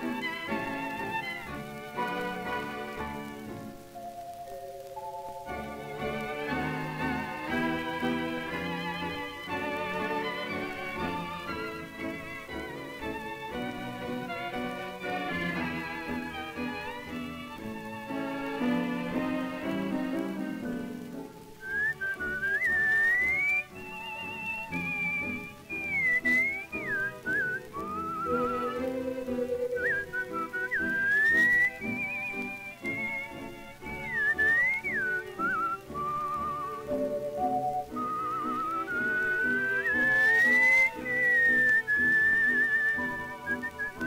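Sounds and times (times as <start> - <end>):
dance orchestra accompaniment: 0.0 - 44.0
whistled melody: 0.0 - 44.0.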